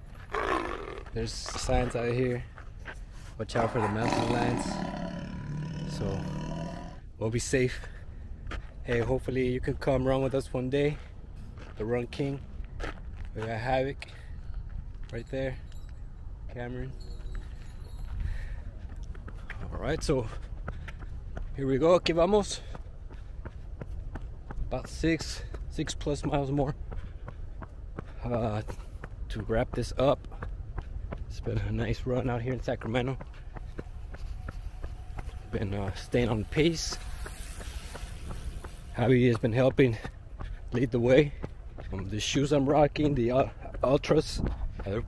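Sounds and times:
footsteps on dirt path: 0.0 - 7.0, 7.6 - 15.9, 17.0 - 45.0
wind rumble on microphone: 28.6 - 45.0.

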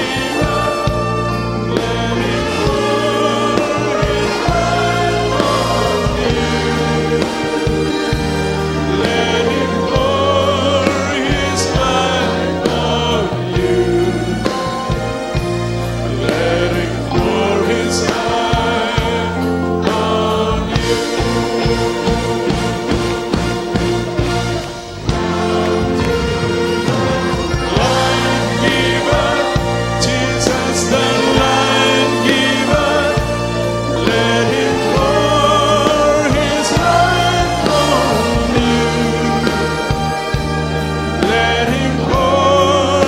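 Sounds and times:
choir singing worship song: 0.0 - 43.0
drum beats: 0.0 - 43.0
instrumental backing: 0.0 - 43.0
steady bass line: 0.0 - 43.0.

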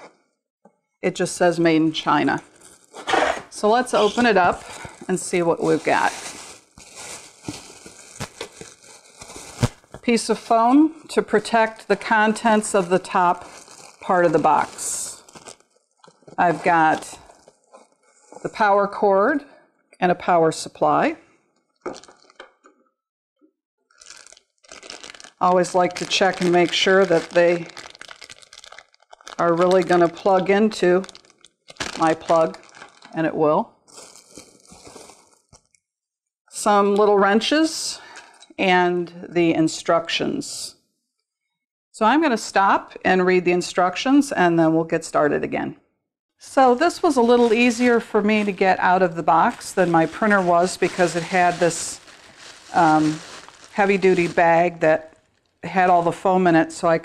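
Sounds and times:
plastic bag crinkling: 2.4 - 10.6, 11.4 - 18.5, 21.8 - 22.4, 23.9 - 33.2, 33.8 - 35.8, 46.7 - 56.2.

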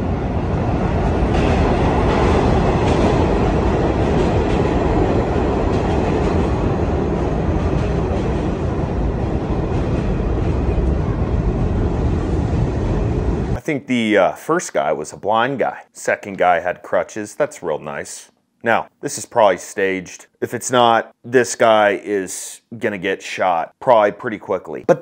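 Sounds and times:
subway train rumbling: 0.0 - 13.6.

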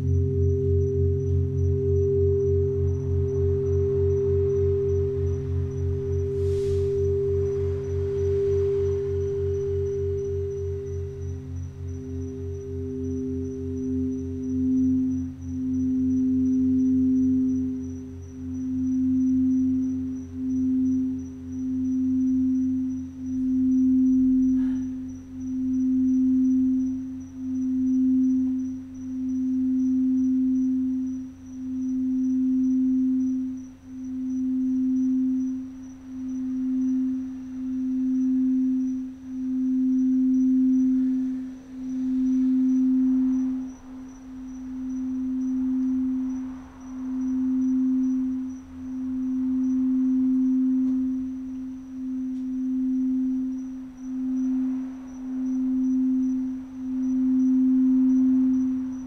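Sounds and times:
singing bowl tone: 0.0 - 59.0.

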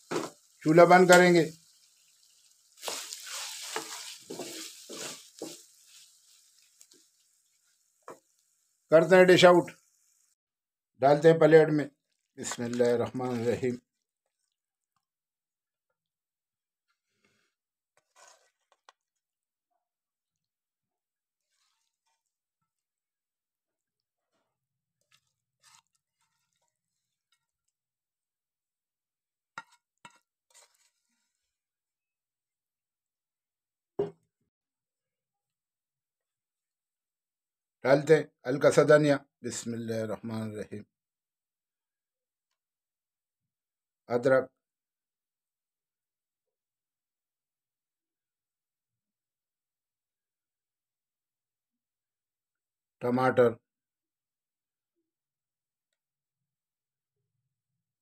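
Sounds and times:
spatula scraping pan: 0.0 - 8.4, 17.9 - 19.1, 21.3 - 22.6, 24.4 - 27.8, 29.5 - 31.5
meat sizzling in fat: 0.0 - 10.4.

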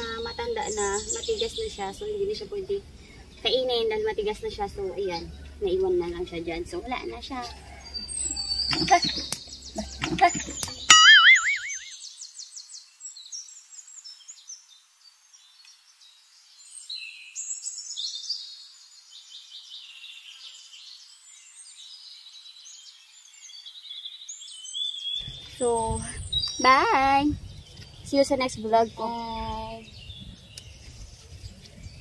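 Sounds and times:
high-pitched chirps and trills: 10.4 - 12.0
springy boing effect: 10.9 - 11.9.

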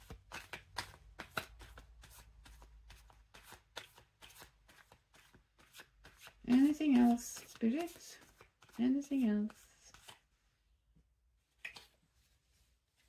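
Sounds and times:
cards being shuffled: 0.0 - 10.3, 11.5 - 12.4.

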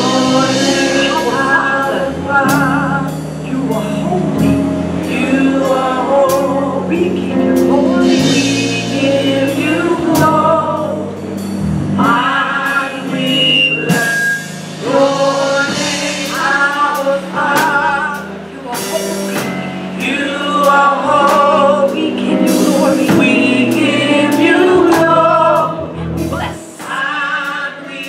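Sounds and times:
group singing gospel song: 0.0 - 28.0
instrumental backing: 0.0 - 28.0.

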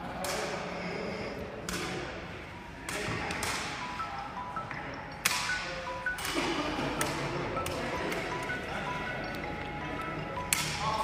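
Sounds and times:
ball kicks echoing in a hall: 0.0 - 4.0.

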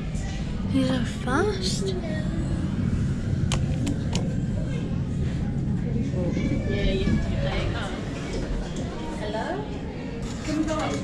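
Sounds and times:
steady low rumble: 0.0 - 10.2.

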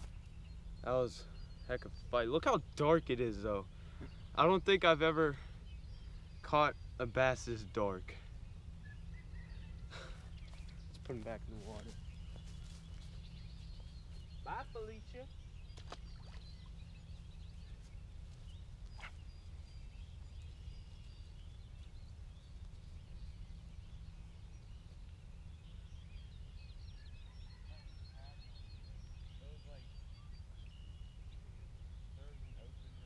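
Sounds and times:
birds chirping and calling: 0.0 - 33.0
steady low rumble: 0.0 - 33.0.

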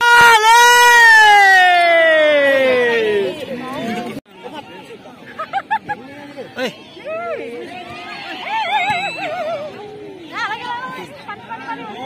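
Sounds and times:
high long human shout: 0.0 - 3.3.

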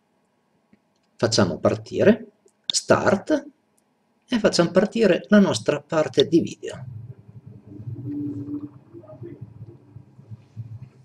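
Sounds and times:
steady low hum: 0.0 - 11.0
low rumbling ambience: 6.1 - 11.0.

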